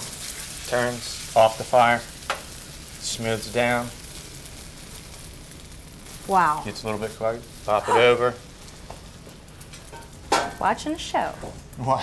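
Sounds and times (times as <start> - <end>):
omelet sizzling in pan: 0.0 - 12.0.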